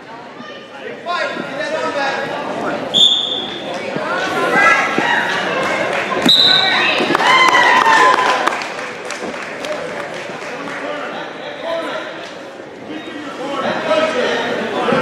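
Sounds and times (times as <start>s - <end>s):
referee's whistle blast: 2.9s - 3.5s, 6.3s - 6.8s.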